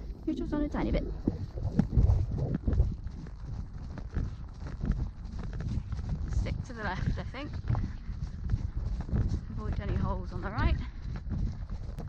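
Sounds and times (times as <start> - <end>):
hoofbeats on grass: 0.0 - 12.0.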